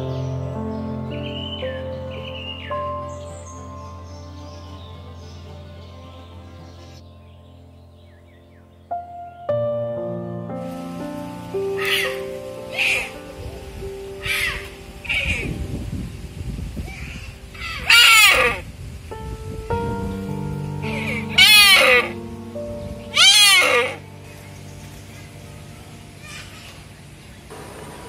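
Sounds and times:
background music: 0:00.0 - 0:27.5
deer bleating: 0:17.6 - 0:18.6, 0:20.9 - 0:22.2, 0:23.2 - 0:24.0.

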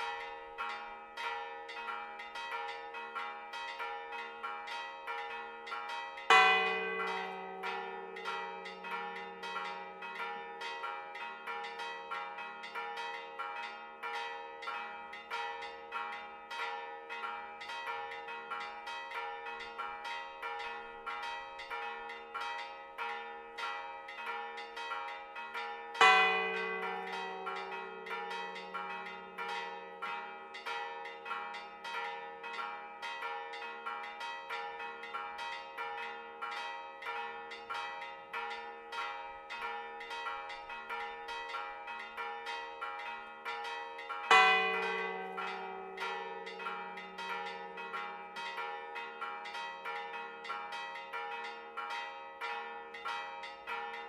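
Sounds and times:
small church bells clanging: 0:00.0 - 0:54.0.

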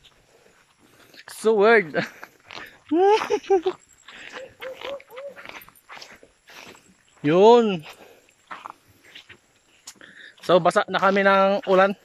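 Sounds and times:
light rustling steps: 0:00.0 - 0:12.0
distant animal calls: 0:04.0 - 0:06.2.

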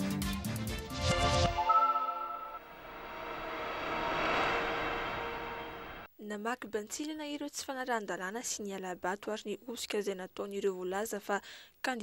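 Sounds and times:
rushing whoosh: 0:02.4 - 0:06.1.

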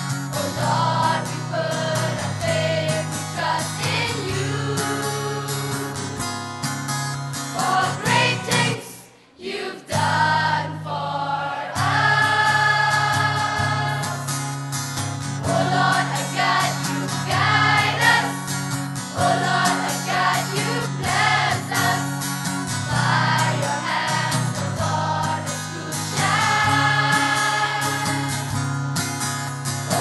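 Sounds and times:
acoustic guitar: 0:00.0 - 0:30.0
girls' choir singing: 0:00.4 - 0:06.2, 0:07.5 - 0:14.4, 0:15.4 - 0:18.4, 0:19.1 - 0:22.2, 0:22.8 - 0:28.6.

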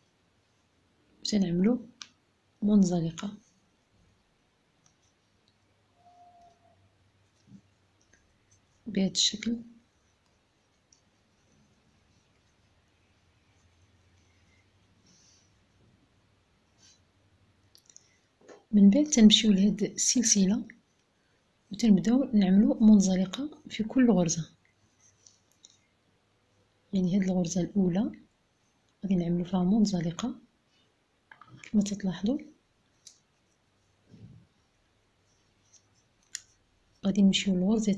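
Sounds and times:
person speaking: 0:01.2 - 0:03.5, 0:08.5 - 0:10.1, 0:18.7 - 0:20.8, 0:21.7 - 0:24.6, 0:26.9 - 0:28.3, 0:29.0 - 0:30.5, 0:31.3 - 0:32.6, 0:35.6 - 0:37.9
woman's voice: 0:02.6 - 0:03.4, 0:08.9 - 0:09.7, 0:37.0 - 0:37.9
crochet hook clicks and handling: 0:35.7 - 0:36.6.

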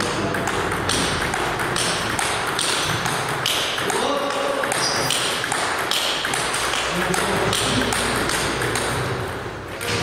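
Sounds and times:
ball bouncing on table: 0:00.0 - 0:10.0
table tennis ball clicking: 0:00.0 - 0:10.0.

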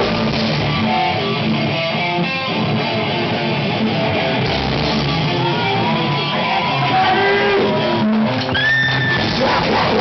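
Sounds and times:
electric guitars ringing notes: 0:00.0 - 0:10.0.

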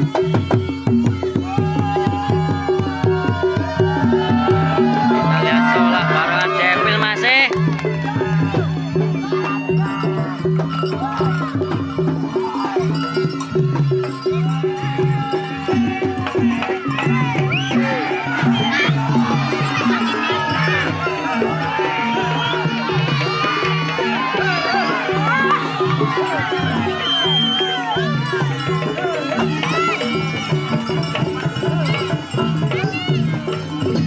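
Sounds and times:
wavering melody line: 0:00.4 - 0:34.0
barrel drums beating fast: 0:09.3 - 0:34.0.

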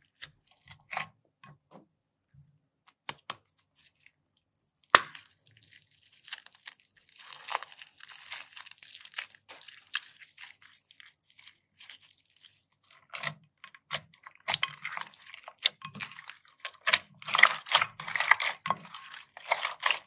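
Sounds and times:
plastic bag crunching: 0:04.9 - 0:13.1, 0:14.5 - 0:20.0
squishy slime pulses: 0:07.2 - 0:20.0.

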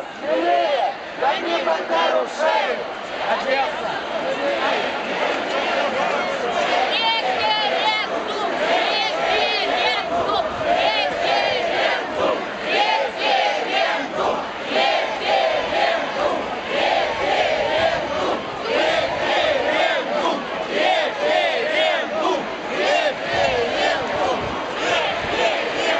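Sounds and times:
crowd chanting slogans: 0:00.0 - 0:25.9.

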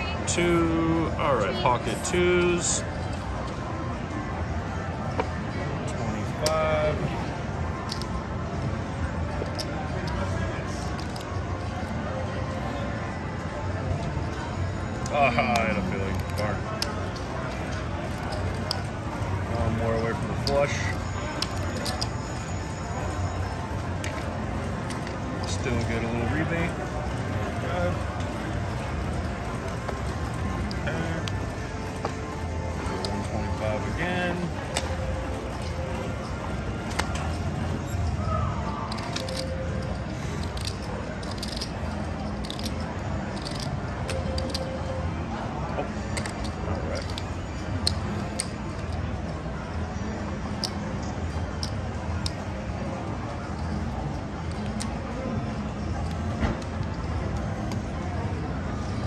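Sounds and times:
background chatter: 0:00.0 - 0:59.0
background music: 0:00.0 - 0:59.0
casino chips clicking: 0:06.3 - 0:06.8, 0:07.8 - 0:08.2, 0:09.3 - 0:11.8, 0:14.9 - 0:45.0, 0:45.9 - 0:55.2.

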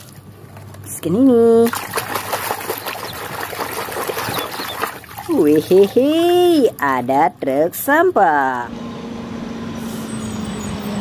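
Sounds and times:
water splashing in a basin: 0:00.0 - 0:07.1.

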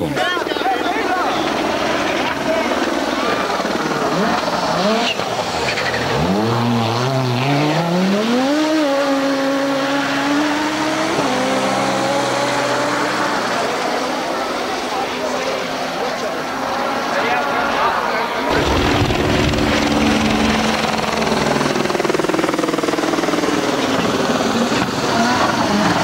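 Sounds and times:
rally car engine revving hard: 0:01.6 - 0:17.8, 0:18.5 - 0:26.0.

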